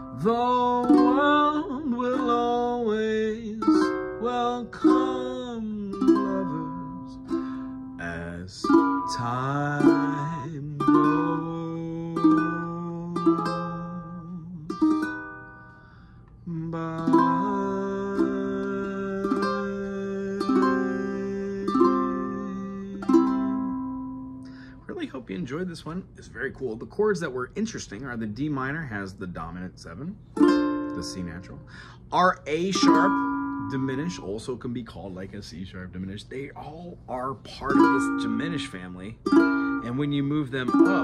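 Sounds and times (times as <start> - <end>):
person singing wavering note: 0.0 - 24.9, 32.6 - 34.5, 37.6 - 41.0
ukulele strumming chords: 0.0 - 27.1, 30.2 - 35.3, 36.3 - 41.0.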